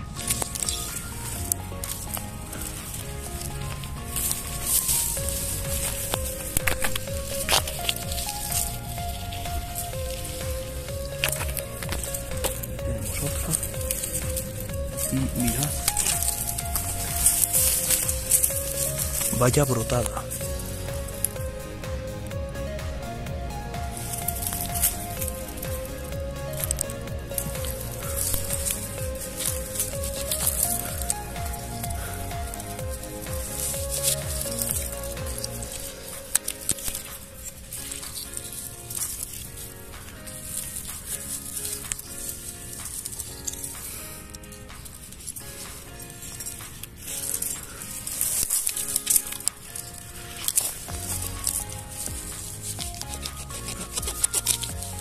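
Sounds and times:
bass line: 0.0s - 35.9s, 50.8s - 55.0s
dry grass rustling and snapping: 0.0s - 55.0s
music melody: 0.0s - 55.0s.

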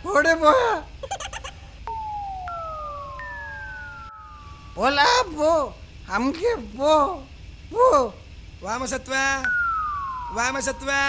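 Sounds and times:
low steady hum: 0.0s - 11.0s
descending whistle-like tones: 1.8s - 5.7s, 9.4s - 11.0s.

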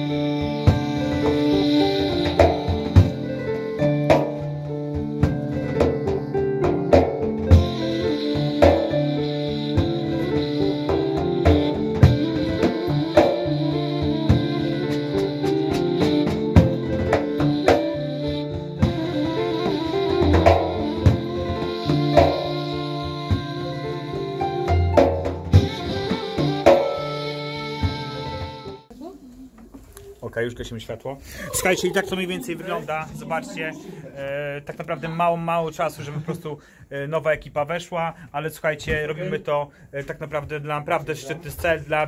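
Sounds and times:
frame drum strokes: 0.0s - 23.6s
held bamboo flute notes: 0.0s - 28.9s.

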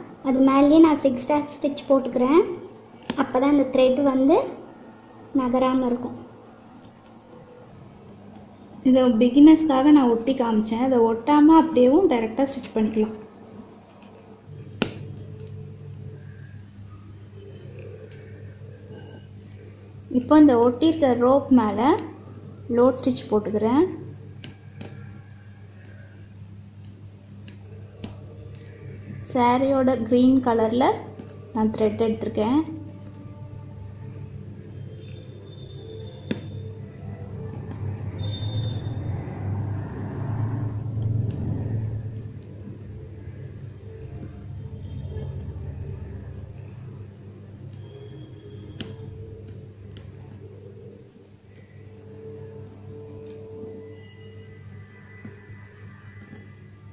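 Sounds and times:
low steady hum: 0.0s - 56.9s
thin high tone: 34.2s - 42.2s
low background rumble: 36.8s - 47.9s.

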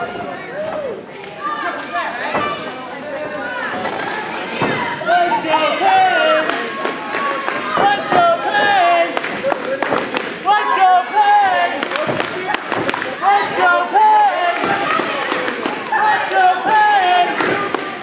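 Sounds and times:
people shouting: 3.5s - 9.2s, 10.4s - 18.0s.

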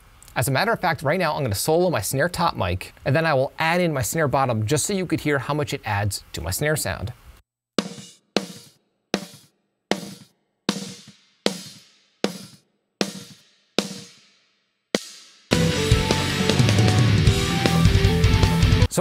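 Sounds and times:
drum kit playing metal: 7.8s - 14.2s, 15.0s - 19.0s
snare drum hits: 7.8s - 14.2s
distorted electric guitar: 15.5s - 18.9s.

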